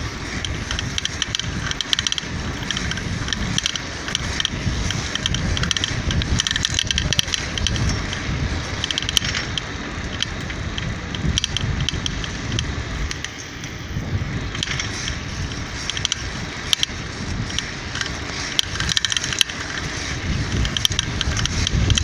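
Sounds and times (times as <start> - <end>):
bicycle metallic rattling: 0.0 - 22.0
wind rumbling on microphone: 0.0 - 22.0.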